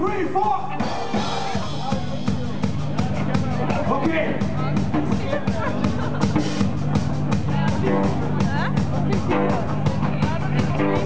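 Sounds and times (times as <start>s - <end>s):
heavy metal band playing: 0.0s - 11.0s
drum kit strikes: 0.7s - 11.0s.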